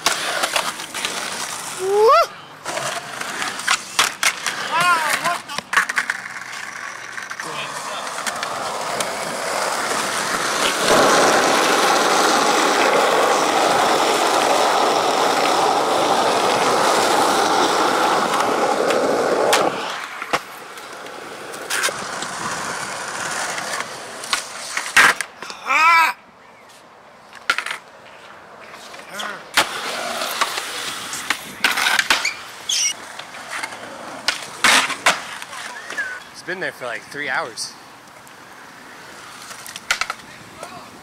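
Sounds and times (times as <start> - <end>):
skateboard wheels rolling on concrete: 0.0 - 41.0
skateboard clacking on concrete: 2.6 - 25.5, 27.3 - 36.3, 39.1 - 40.8.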